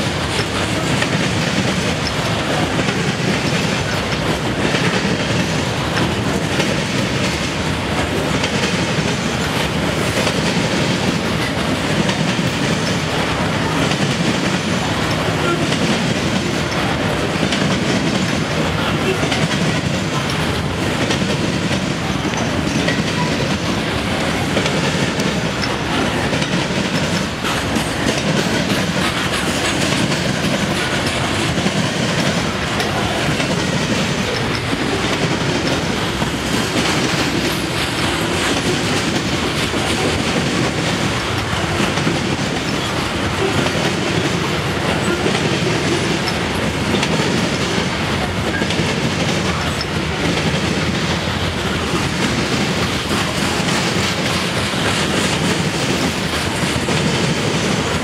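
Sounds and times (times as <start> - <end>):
freight train wheels clattering: 0.0 - 58.0.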